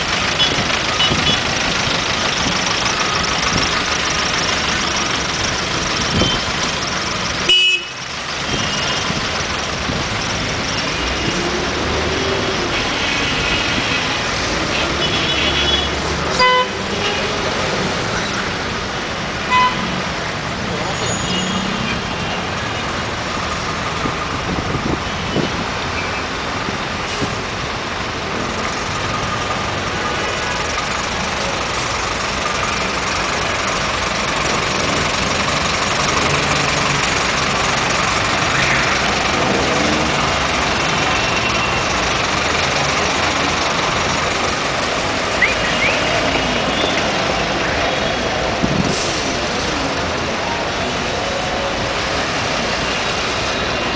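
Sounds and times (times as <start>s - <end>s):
idling vehicle engines: 0.0s - 19.3s, 20.0s - 53.9s
car horns honking: 0.4s - 1.5s, 7.5s - 9.0s, 14.7s - 17.3s, 19.4s - 20.0s.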